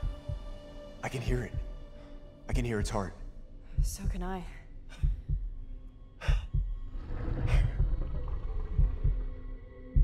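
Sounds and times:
heartbeat thumps: 0.0s - 1.9s, 2.5s - 10.0s.

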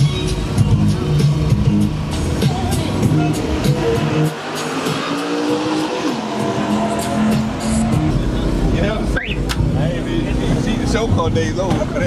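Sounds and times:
people talking: 2.4s - 4.0s, 8.0s - 12.0s
rising squeal: 3.1s - 9.4s.

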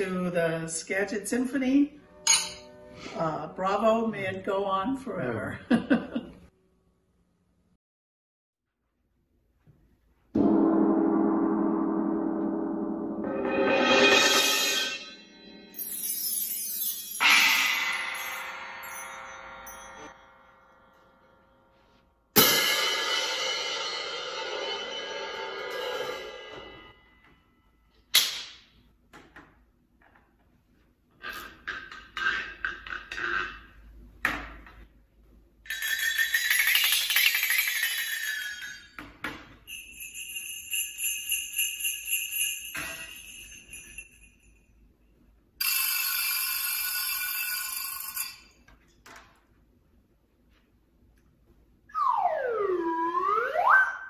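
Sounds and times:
bright ringing metal tones: 2.0s - 4.0s, 10.4s - 21.7s, 35.7s - 49.0s
cymbal struck and ringing: 2.2s - 3.0s, 10.4s - 21.3s, 22.4s - 27.3s.

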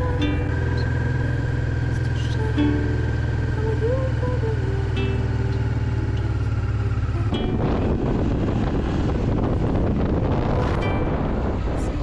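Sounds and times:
motorcycle engine running: 0.0s - 12.0s
wind buffeting microphone: 7.0s - 12.0s.

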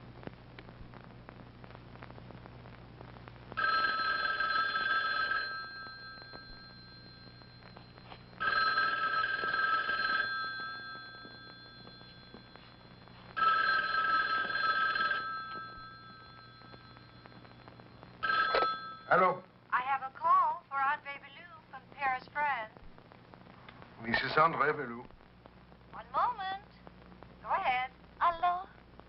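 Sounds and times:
telephone bell ringing: 3.6s - 19.4s.

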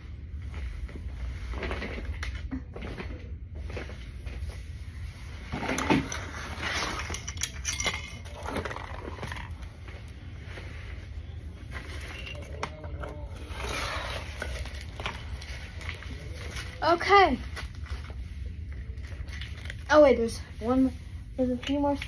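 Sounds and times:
rustling: 0.3s - 22.0s
toys clattering on tile floor: 5.6s - 9.6s.

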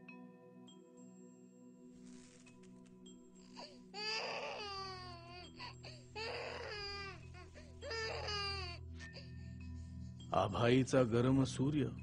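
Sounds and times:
background music: 0.0s - 12.0s
baby crying: 3.4s - 9.4s.

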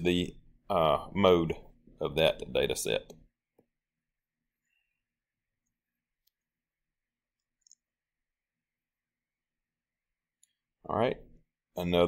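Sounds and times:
computer mouse clicks: 7.4s - 7.9s.

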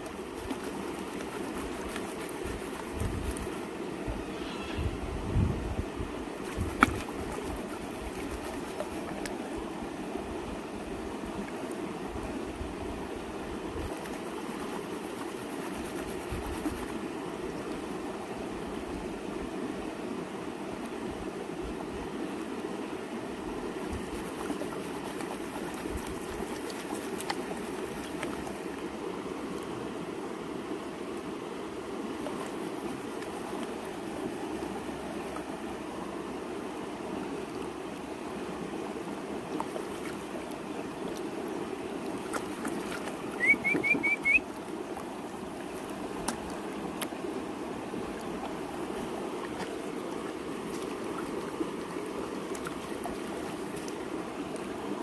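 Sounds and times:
gold pan swirling in water: 0.0s - 3.6s, 13.8s - 17.0s
creek water running: 0.0s - 55.0s.

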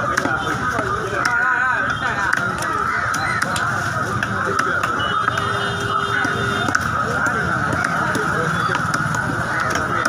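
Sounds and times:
overlapping voices and calls: 0.0s - 10.0s.

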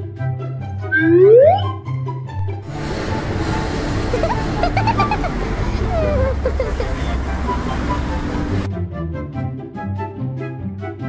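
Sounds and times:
light cartoon music: 0.0s - 11.0s
rising whistle-like sound effect: 0.8s - 1.8s
street traffic: 2.6s - 8.7s.

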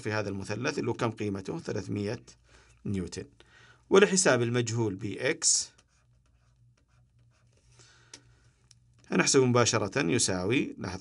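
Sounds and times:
low steady hum: 0.0s - 11.0s
stylus writing on tablet: 5.2s - 7.8s.

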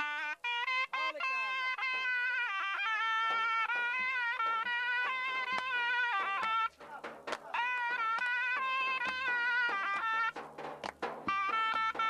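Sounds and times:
zurna melody: 0.0s - 12.0s.

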